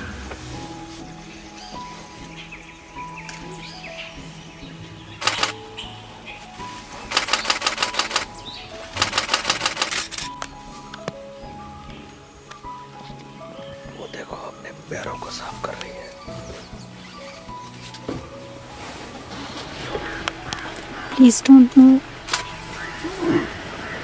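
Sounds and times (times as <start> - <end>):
soft background music: 0.0 - 24.0
camera shutters firing in bursts: 5.2 - 5.6, 7.1 - 8.3, 8.9 - 10.4.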